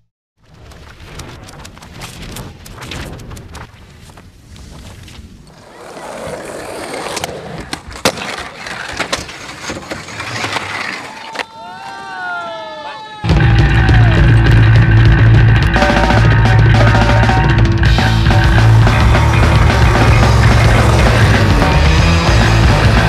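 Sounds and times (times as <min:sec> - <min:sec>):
skateboards rolling on asphalt: 0:00.4 - 0:12.1, 0:18.0 - 0:23.0
skateboard decks clacking: 0:05.5 - 0:12.0, 0:13.4 - 0:23.0.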